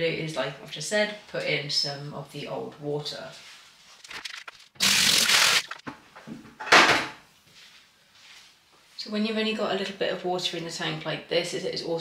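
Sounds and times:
water splashing onto glass: 0:04.0 - 0:05.9.

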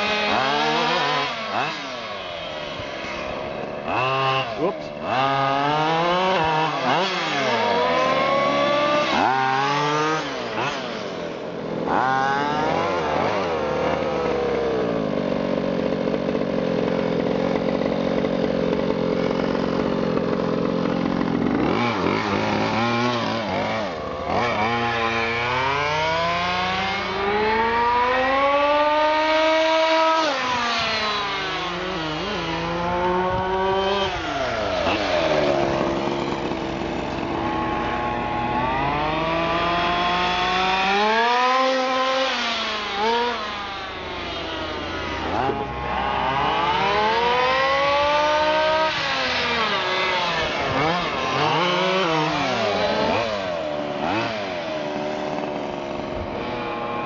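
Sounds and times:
two-stroke engine idling and revving: 0:00.0 - 0:57.0.

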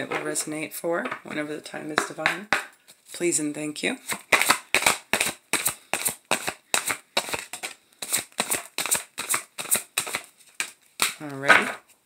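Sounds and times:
cards being shuffled: 0:04.0 - 0:12.0.

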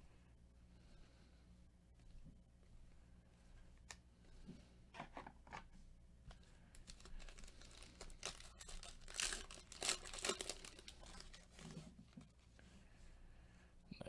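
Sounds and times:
plastic wrapper tearing and crinkling: 0:06.8 - 0:12.2.

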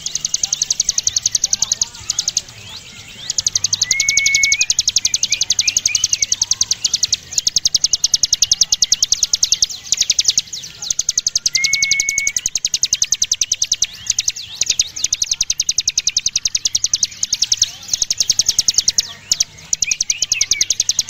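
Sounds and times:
bird singing rapid high notes: 0:00.0 - 0:21.0.

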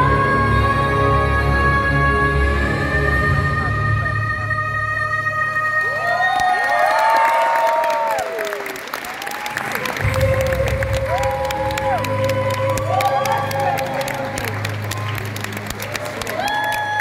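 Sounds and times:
live singing over backing track: 0:00.0 - 0:05.8
audience applause and cheering: 0:05.7 - 0:17.0.

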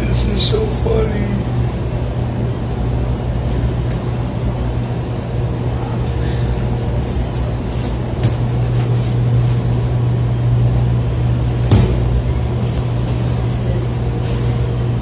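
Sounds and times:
tumble dryer humming: 0:00.0 - 0:04.4, 0:07.5 - 0:15.0.

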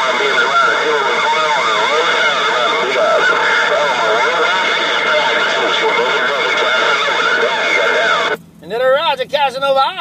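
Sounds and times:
garbled voice over radio: 0:00.0 - 0:08.4
radio static: 0:00.0 - 0:10.0.

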